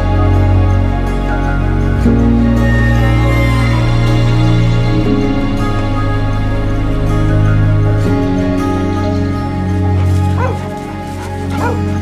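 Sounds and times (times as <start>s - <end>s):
background music: 0.0s - 12.0s
dog barking: 10.3s - 10.7s, 11.5s - 11.9s.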